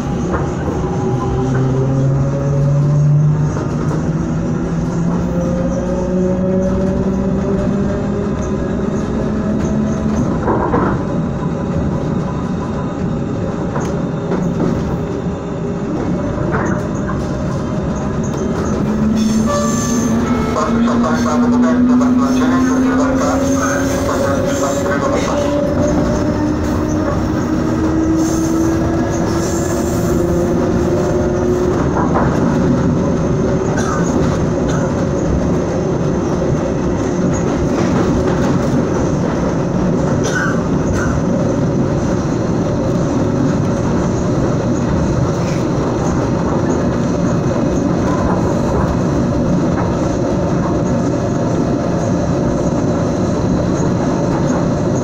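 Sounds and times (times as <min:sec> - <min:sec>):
train running rumble: 0:00.0 - 0:55.0.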